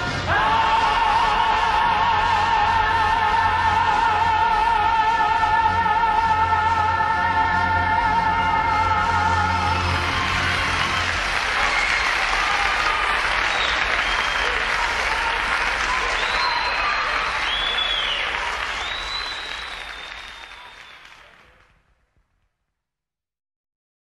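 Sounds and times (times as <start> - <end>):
audience applauding and cheering: 0.0 - 22.0
high calls from audience: 9.9 - 21.6.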